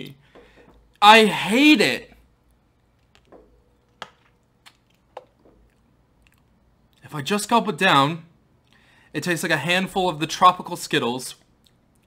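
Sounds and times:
wet mouth clicks and lip smacks: 2.9 - 7.0.

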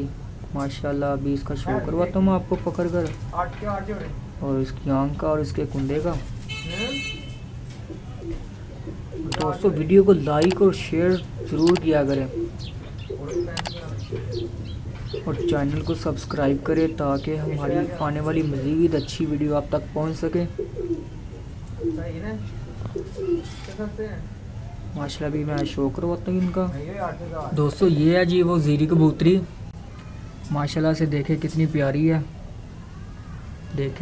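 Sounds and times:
pigeons cooing: 7.7 - 19.0, 19.8 - 23.8.

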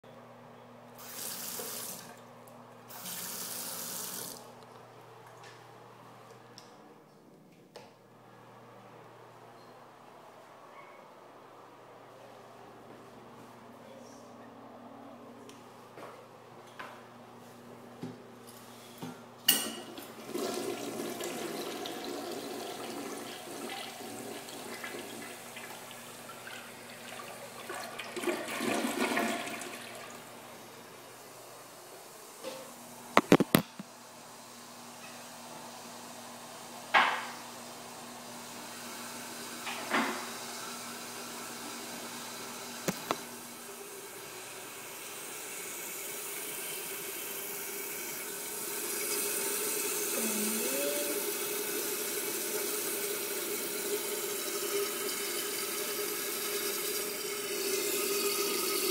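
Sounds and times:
toilet flushing: 1.0 - 2.3, 2.9 - 4.5, 19.6 - 31.5, 37.0 - 58.9.

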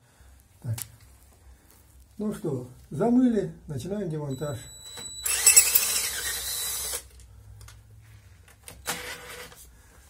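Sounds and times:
cordless power tool on bolt: 5.0 - 7.1.

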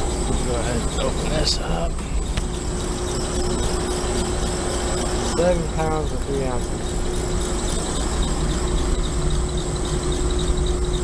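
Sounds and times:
condensing unit humming: 0.0 - 11.0.

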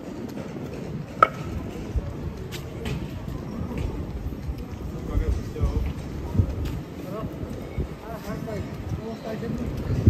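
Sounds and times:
city street noise: 0.0 - 10.0.

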